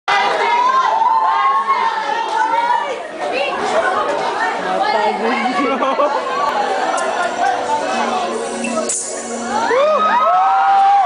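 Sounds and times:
crowd chatter in a hall: 0.1 - 11.0.

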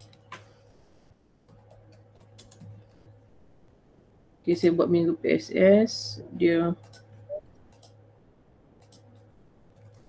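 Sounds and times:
low steady hum: 0.0 - 10.0
typing on computer keyboard: 1.5 - 3.0, 7.7 - 8.0.

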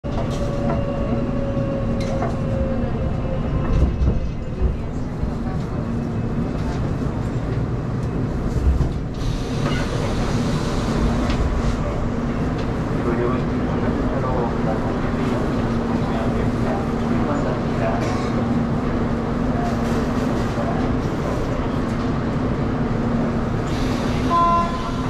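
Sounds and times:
subway train rumble: 0.0 - 25.0.

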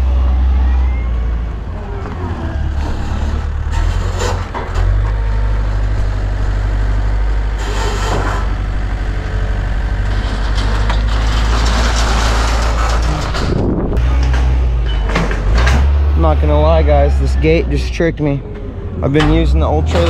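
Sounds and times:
forklift engine droning: 0.0 - 20.0.

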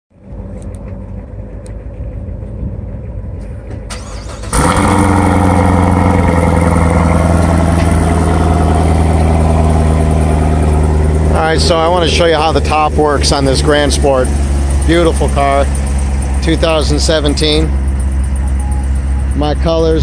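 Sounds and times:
quiet rumble: 0.1 - 4.6
car engine starting and idling: 0.2 - 20.0.

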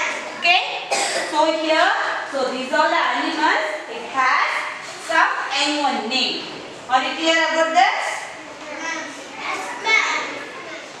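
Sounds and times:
young children answering together: 8.6 - 11.0.

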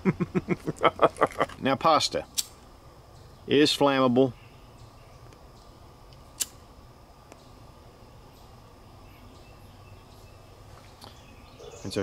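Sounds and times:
faint insect drone: 0.0 - 12.0
sharp click: 2.3 - 2.6, 6.1 - 6.6
faint bird chirps: 3.1 - 6.4, 7.3 - 12.0.

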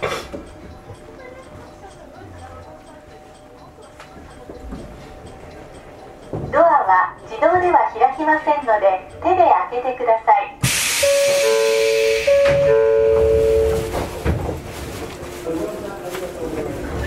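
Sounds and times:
voice: 0.8 - 10.6, 15.4 - 17.0
train air hiss: 10.6 - 12.6.

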